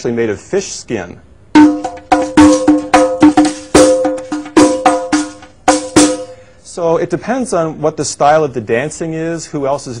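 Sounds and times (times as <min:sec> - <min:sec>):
frame drum with jingles: 0:01.6 - 0:06.4.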